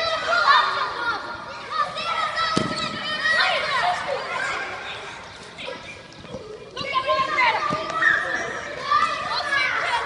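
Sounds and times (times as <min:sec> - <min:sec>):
children shouting: 0:00.0 - 0:10.0.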